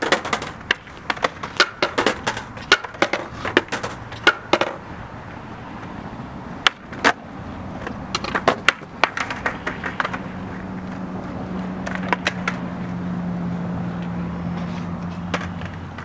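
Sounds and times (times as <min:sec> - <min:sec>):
skateboard clacking on concrete: 0:00.0 - 0:13.0, 0:13.9 - 0:16.0.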